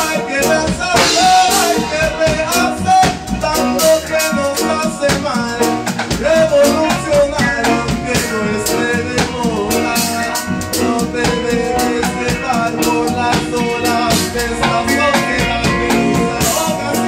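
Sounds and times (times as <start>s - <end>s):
bending melodic lead line: 0.0s - 17.0s
drum kit beat: 0.0s - 17.0s
reggae band playing: 0.0s - 17.0s.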